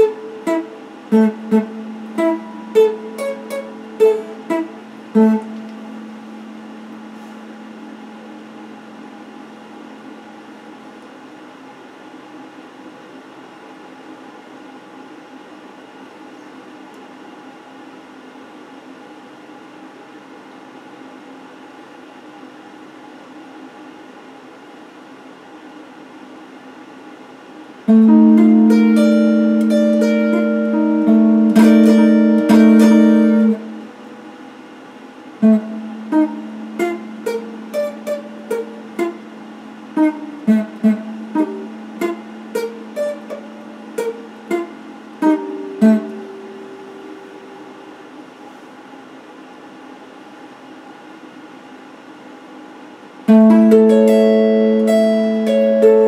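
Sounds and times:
electric guitar playing: 0:00.0 - 0:10.0, 0:27.9 - 0:34.2, 0:35.4 - 0:47.9, 0:53.3 - 0:56.0
steady low hum: 0:00.0 - 0:56.0.

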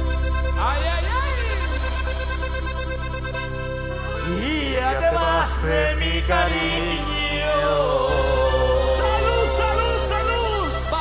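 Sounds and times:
accordion and keyboard chords: 0:00.0 - 0:11.0
steady bass: 0:00.0 - 0:11.0
person singing: 0:04.2 - 0:10.7.

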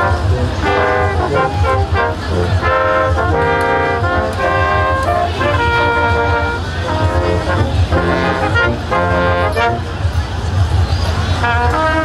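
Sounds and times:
brass ensemble playing: 0:00.0 - 0:10.1, 0:11.4 - 0:12.0
steady low rumble: 0:00.0 - 0:12.0.

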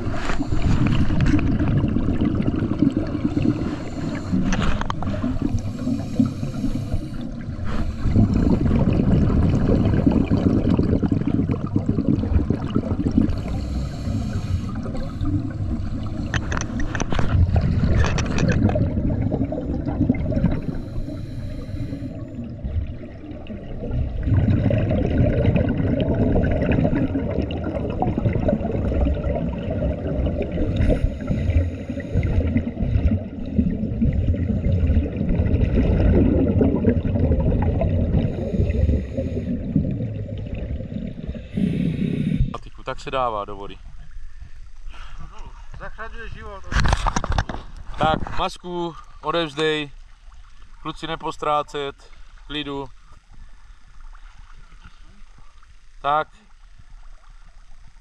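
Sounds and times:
regulator bubbles gurgling underwater: 0:00.0 - 0:44.9, 0:49.0 - 0:58.0.

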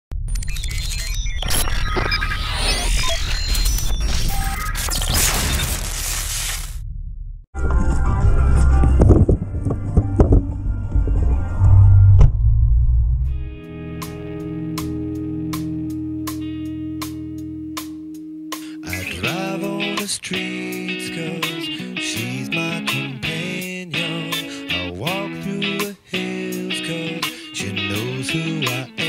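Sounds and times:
electronic music with deep bass: 0:00.2 - 0:06.8, 0:07.6 - 0:19.5
guitar-led song: 0:13.3 - 0:29.0.

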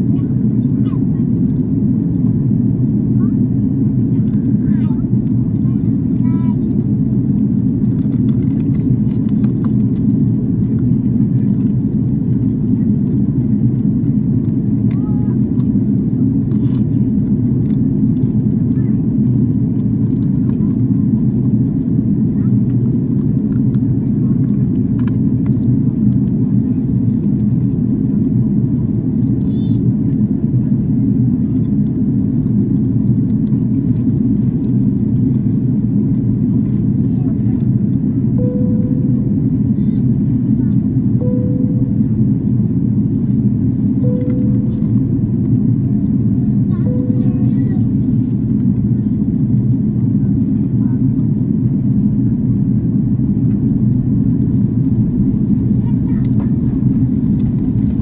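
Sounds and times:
airplane cabin noise: 0:00.0 - 0:58.0.

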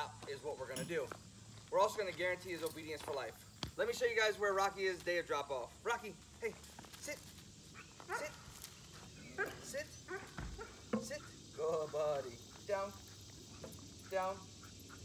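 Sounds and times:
dog barking and whining: 0:07.7 - 0:08.5, 0:09.2 - 0:10.9.

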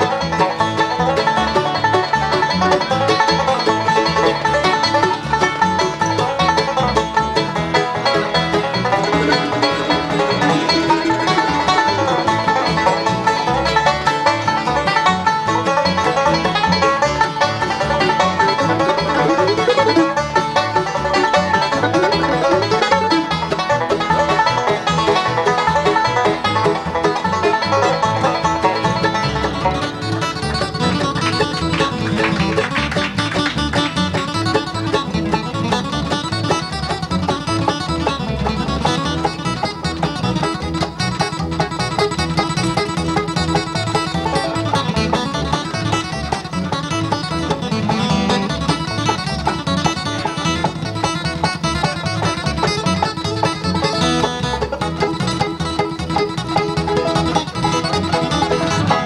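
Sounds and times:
acoustic guitar: 0:00.0 - 0:59.0
banjo picking: 0:00.0 - 0:59.0
mandolin: 0:00.0 - 0:59.0
upright bass: 0:00.0 - 0:59.0.

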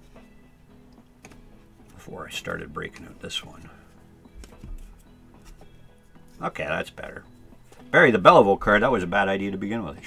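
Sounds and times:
quiet background music: 0:00.0 - 0:10.0
cards tapping on a table: 0:01.2 - 0:01.4, 0:04.4 - 0:05.7.

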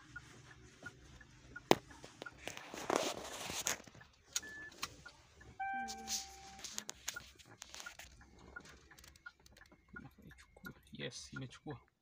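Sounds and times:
phone being handled: 0:01.7 - 0:04.9, 0:05.6 - 0:08.2.

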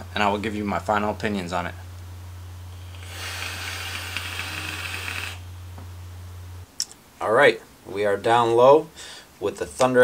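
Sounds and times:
steady low hum: 0:00.0 - 0:10.0
hiss of air and vapour: 0:02.7 - 0:05.4.

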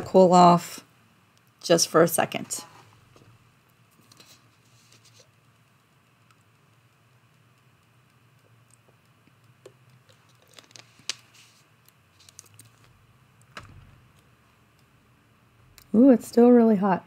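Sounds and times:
plastic bottle crinkling: 0:10.0 - 0:11.6.

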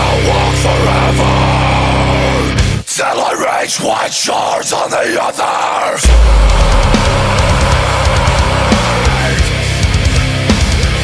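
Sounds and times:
bass guitar: 0:00.0 - 0:02.8, 0:06.0 - 0:11.0
distorted electric guitars: 0:00.0 - 0:02.9, 0:06.0 - 0:11.0
drums: 0:00.0 - 0:03.0, 0:05.6 - 0:11.0.

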